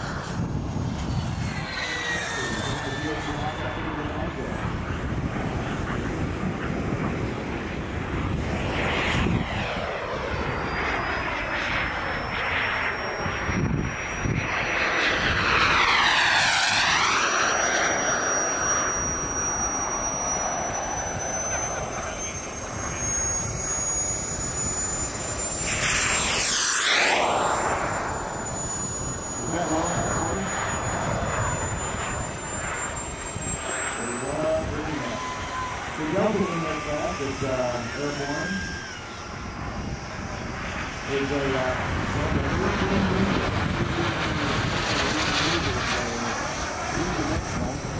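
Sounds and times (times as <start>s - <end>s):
model jet turbine whine: 0.0s - 47.9s.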